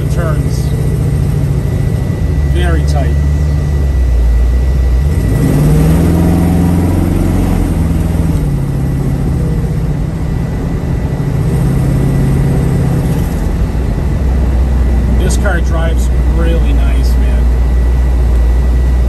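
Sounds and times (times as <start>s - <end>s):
car engine revving: 0.0s - 19.0s
road noise inside car: 0.0s - 19.0s.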